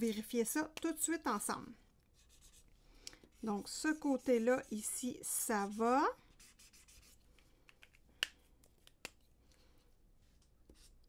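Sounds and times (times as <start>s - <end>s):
marker scratching on paper: 2.2s - 2.7s, 3.3s - 7.2s.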